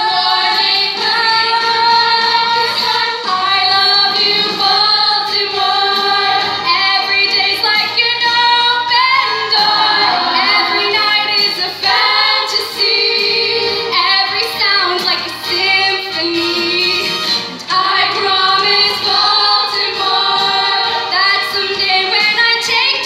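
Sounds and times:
chorus singing: 0.0 - 14.9, 15.6 - 23.0.

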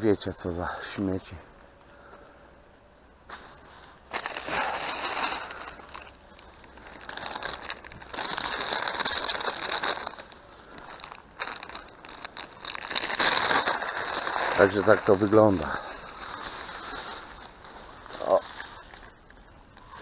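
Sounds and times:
plastic bag crinkling: 3.2 - 20.0.

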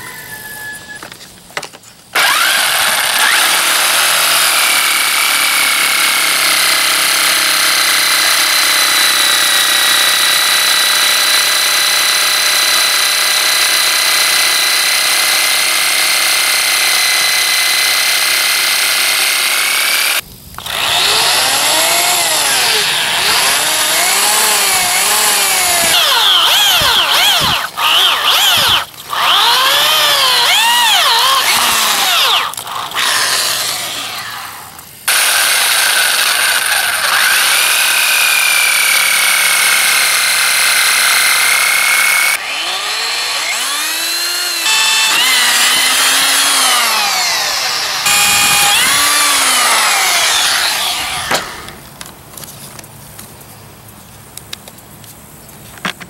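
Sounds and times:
electric drill boring holes: 2.2 - 51.8
jigsaw cutting plastic: 2.2 - 51.8.

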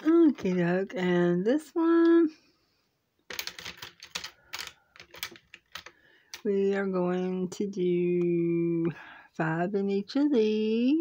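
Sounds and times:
markers clicking in plastic box: 3.3 - 6.4.

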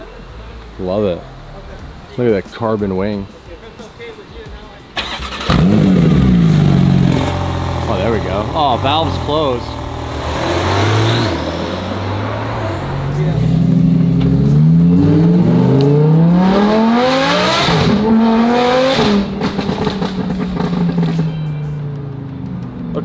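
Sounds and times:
sports car engine revving: 5.0 - 21.4.

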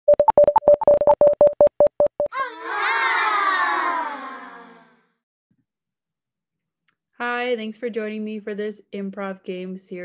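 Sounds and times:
short electronic beeps: 0.1 - 2.3.

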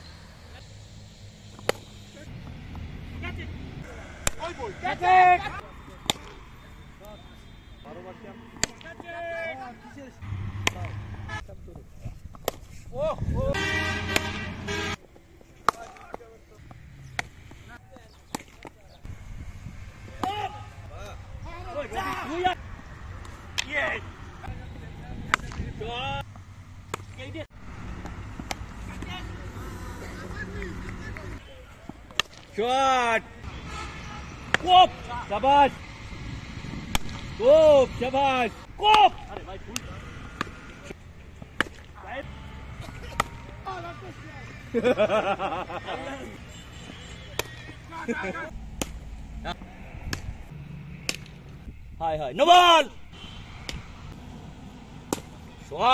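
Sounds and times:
outdoor background noise: 0.0 - 55.9
cricket bat striking ball: 1.6 - 1.9, 43.0 - 43.4, 48.7 - 49.1, 55.1 - 55.4
players shouting: 3.1 - 11.4, 13.0 - 15.0, 19.9 - 26.2, 27.1 - 35.8, 37.2 - 54.3.

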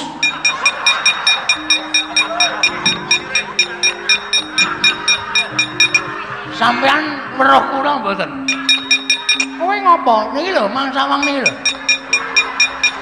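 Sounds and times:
metal plates clanking on wood: 0.0 - 6.4
gamelan melody: 0.0 - 13.0.

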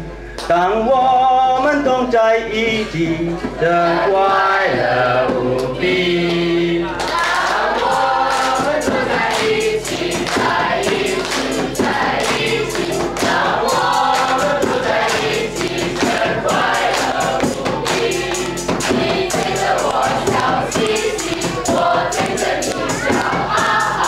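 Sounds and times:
young voices singing as choir: 2.5 - 24.0
hand claps: 7.0 - 23.9.

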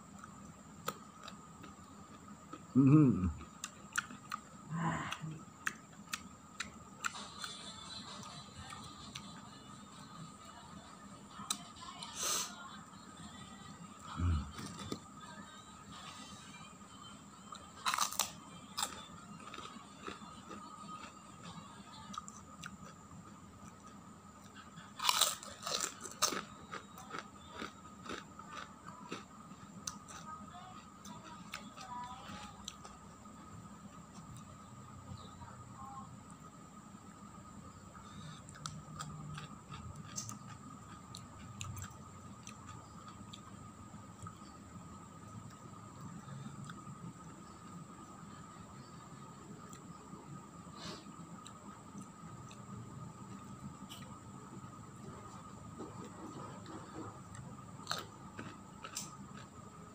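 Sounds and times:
chewing: 3.3 - 7.6, 17.5 - 23.0, 23.6 - 33.0, 38.0 - 44.5, 55.2 - 59.6
crackers crunching: 17.8 - 23.0, 23.6 - 33.0, 38.1 - 43.5, 55.8 - 59.9.

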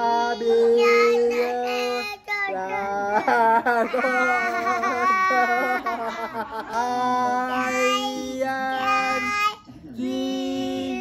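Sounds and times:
person singing long notes: 6.7 - 11.0.

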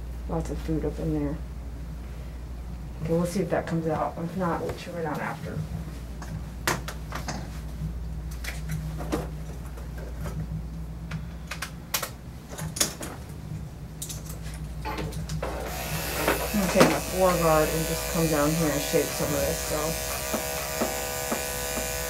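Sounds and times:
steady low hum: 0.0 - 22.0
grooming tools clicking and clacking: 14.0 - 22.0.

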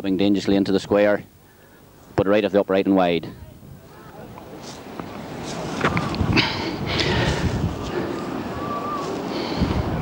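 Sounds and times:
faint voices: 3.2 - 10.0
wind buffeting microphone: 5.2 - 10.0.

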